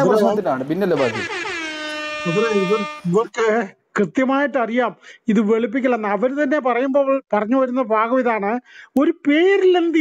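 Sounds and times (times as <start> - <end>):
man talking: 0.0 - 1.3, 2.2 - 10.0
loud horn-like tone: 0.9 - 3.4.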